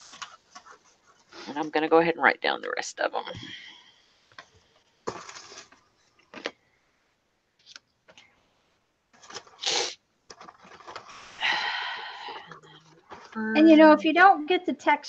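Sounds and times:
paper rustling and sliding: 9.2 - 11.4.

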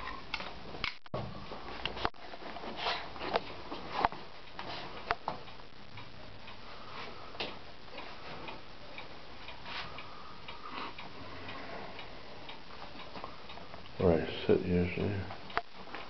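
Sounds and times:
faint regular ticking: 0.1 - 16.0.

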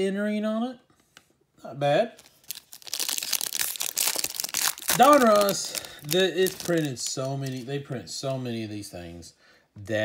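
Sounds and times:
foil wrapper crinkling and tearing: 2.2 - 7.7.

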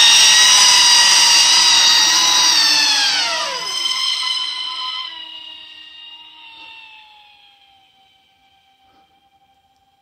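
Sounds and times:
rc plane electric motors whining: 0.0 - 9.9.

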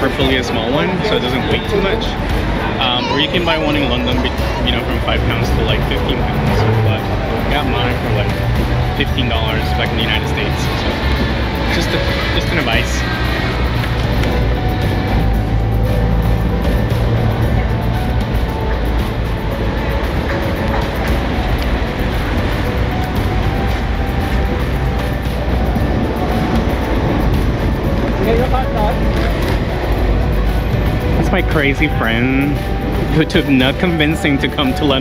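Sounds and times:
wind rumbling on microphone: 0.0 - 33.4
road traffic: 0.0 - 35.0.

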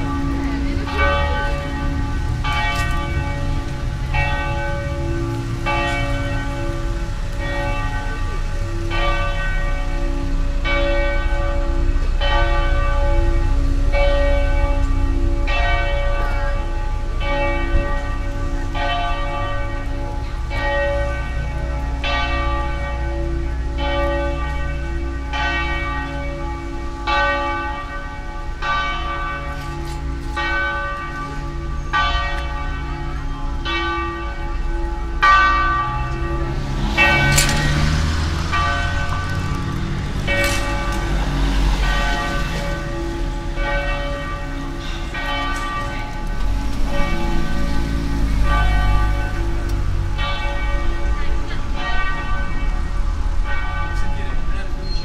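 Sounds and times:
church bell tolling: 0.0 - 55.0
low rumble: 34.9 - 53.6.

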